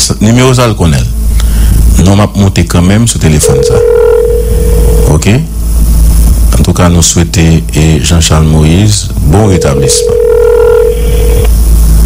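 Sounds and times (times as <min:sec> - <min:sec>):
steady low rumble: 0:00.0 - 0:12.0
telephone ringback tone: 0:03.4 - 0:05.1, 0:09.5 - 0:11.5.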